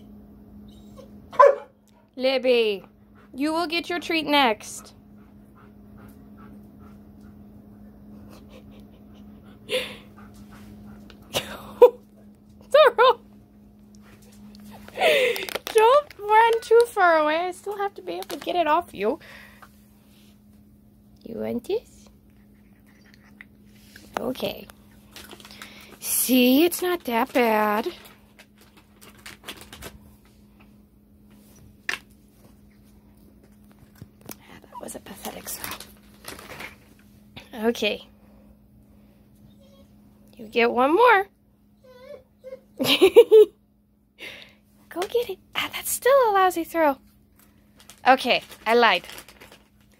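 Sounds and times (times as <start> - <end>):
faint low hum: 0.0 - 49.9
dog whining: 0.6 - 1.7, 39.4 - 40.0, 41.7 - 42.8
dog panting quietly: 2.8 - 3.8, 4.5 - 11.4.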